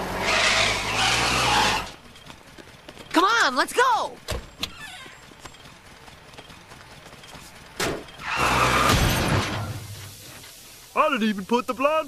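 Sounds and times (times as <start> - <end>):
loud crash: 8.4 - 10.0.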